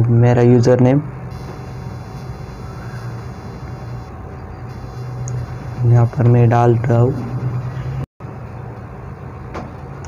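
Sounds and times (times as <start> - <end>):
recording hum and hiss: 0.0 - 7.8.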